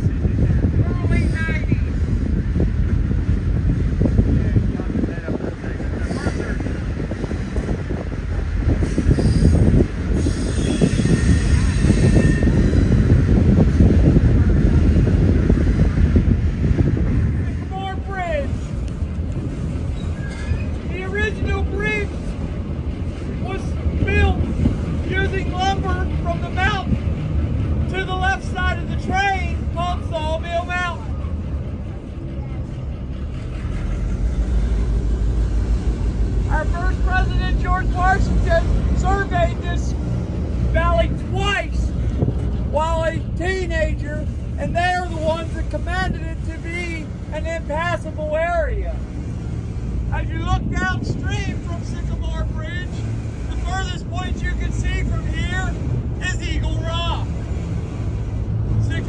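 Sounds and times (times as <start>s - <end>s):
passengers' voices: 0.0s - 12.3s, 27.8s - 43.0s
wind on microphone: 0.0s - 28.0s
train rolling rumble: 0.0s - 59.0s.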